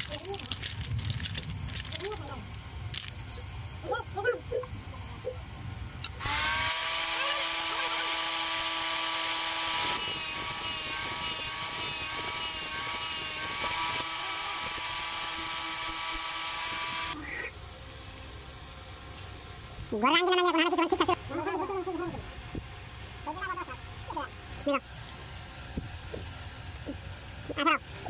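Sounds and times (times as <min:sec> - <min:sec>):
power sander whining: 0:06.1 - 0:17.2.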